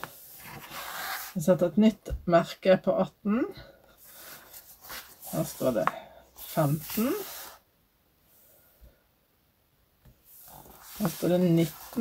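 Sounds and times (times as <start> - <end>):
soft rustling: 3.9 - 7.6, 10.1 - 12.0
person speaking: 4.9 - 7.6, 10.8 - 12.0.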